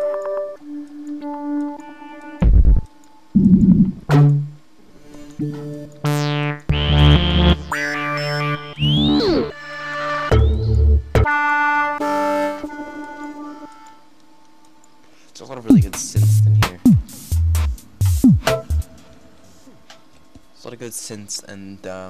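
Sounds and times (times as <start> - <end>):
synth bass sounds: 2.4 - 4.4, 6.0 - 9.5.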